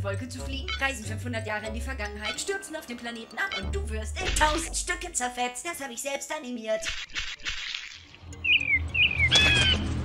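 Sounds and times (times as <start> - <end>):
bird chirps: 8.4 - 9.8.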